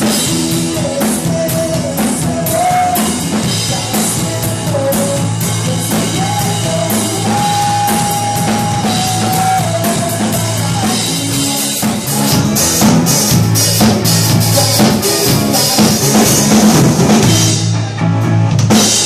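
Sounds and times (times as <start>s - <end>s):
drum kit: 0.0s - 19.0s
electric bass guitar line: 0.0s - 19.0s.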